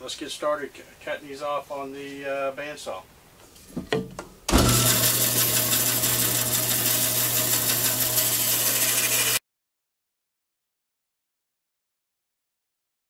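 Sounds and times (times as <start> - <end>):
bandsaw running: 4.5 - 9.4.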